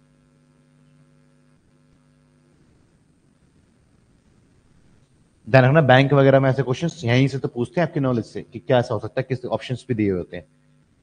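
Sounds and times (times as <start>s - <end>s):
faint electrical mains hum: 0.0s - 11.0s.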